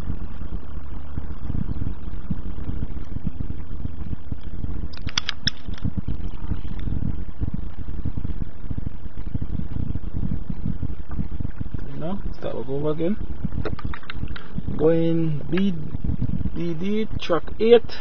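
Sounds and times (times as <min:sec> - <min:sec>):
low rumble in car cabin: 0:00.0 - 0:05.0, 0:05.7 - 0:18.0.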